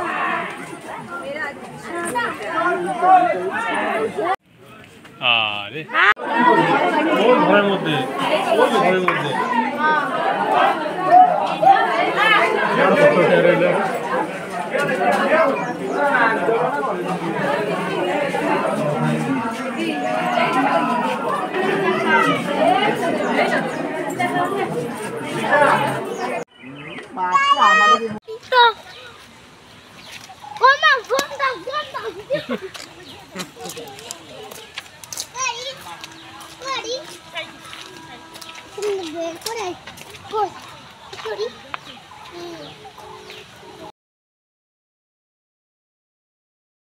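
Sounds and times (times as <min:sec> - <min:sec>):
crowd chatter: 0:00.0 - 0:43.9
birds calling: 0:15.3 - 0:16.4, 0:25.8 - 0:43.9.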